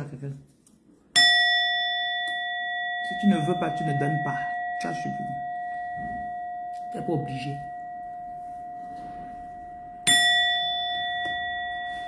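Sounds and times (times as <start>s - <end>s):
metal bell chime ringing: 1.2s - 12.0s.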